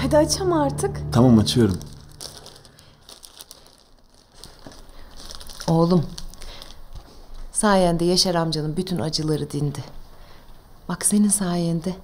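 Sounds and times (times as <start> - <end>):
wrapping paper crinkling: 1.6 - 7.5.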